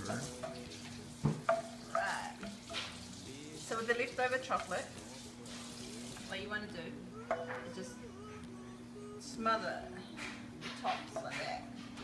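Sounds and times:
spoon stirring melted chocolate: 0.1s - 5.6s.

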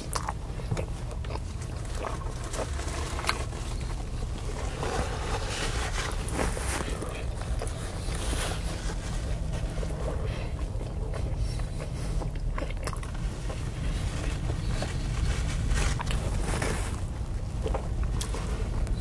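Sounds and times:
man chewing food: 0.0s - 19.0s
steady low rumble: 0.0s - 19.0s
paper napkin wiping mouth: 2.3s - 12.2s.

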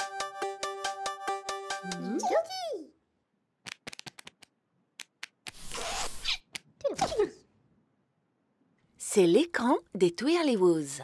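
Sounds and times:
sharp clicks and taps: 3.6s - 5.6s.

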